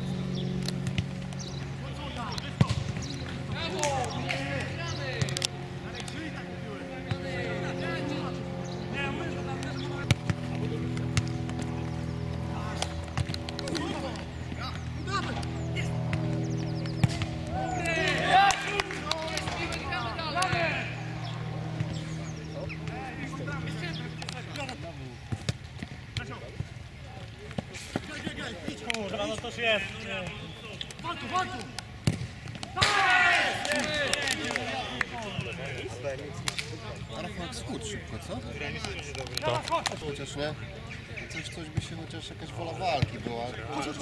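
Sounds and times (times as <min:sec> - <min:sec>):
steady hum: 0:00.0 - 0:34.1
players shouting: 0:01.7 - 0:26.6, 0:27.2 - 0:36.0
football being kicked: 0:02.6 - 0:03.1, 0:16.0 - 0:17.4, 0:32.0 - 0:32.8
people shouting: 0:17.0 - 0:21.8, 0:32.7 - 0:35.0.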